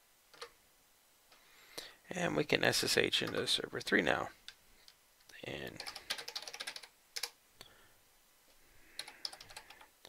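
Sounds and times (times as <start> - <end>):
typing on computer keyboard: 0.3 - 0.5, 5.8 - 7.4, 9.0 - 9.9.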